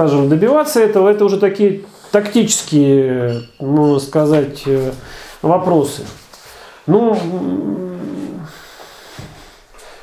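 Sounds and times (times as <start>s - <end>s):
man's drawn-out hesitation: 6.9s - 8.6s.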